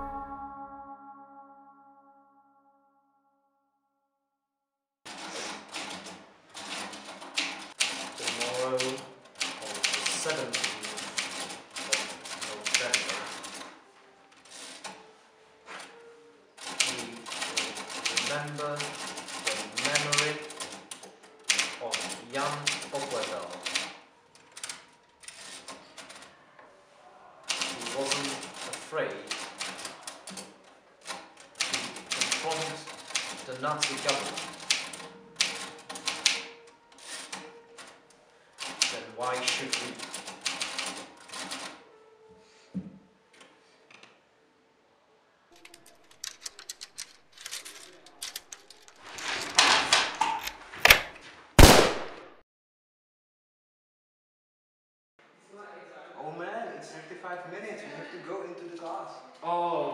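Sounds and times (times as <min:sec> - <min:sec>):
typewriter keys clacking: 0:05.2 - 0:13.7, 0:16.6 - 0:26.3, 0:27.5 - 0:37.9, 0:38.6 - 0:41.8, 0:45.6 - 0:51.1.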